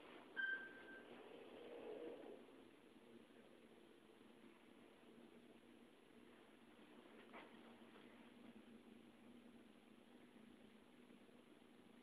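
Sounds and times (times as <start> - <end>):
elevator ding: 0.4 - 1.2.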